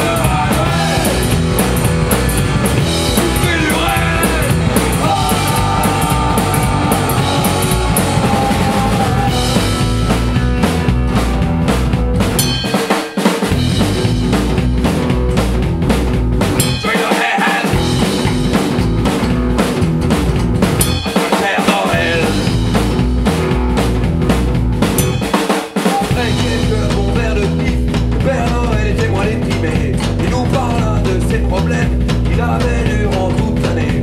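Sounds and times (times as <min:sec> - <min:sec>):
upright double bass: 0:00.0 - 0:12.6, 0:13.5 - 0:16.8, 0:17.7 - 0:21.0, 0:21.9 - 0:25.3, 0:26.1 - 0:34.0
drum kit: 0:00.0 - 0:34.0.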